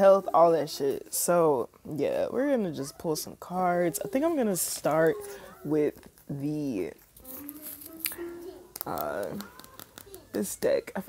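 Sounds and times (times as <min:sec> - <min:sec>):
cards clicking: 0:07.4 - 0:10.4.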